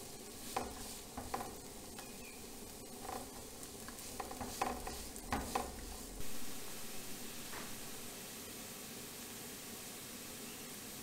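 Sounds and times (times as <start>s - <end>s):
spatula scraping a pan: 0.0s - 8.1s
onion sizzling in oil: 0.0s - 11.0s.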